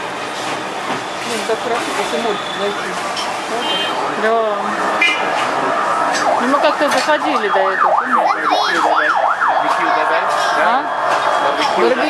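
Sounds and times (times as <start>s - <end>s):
voices: 1.2s - 12.0s
siren in a fast yelp: 4.1s - 12.0s.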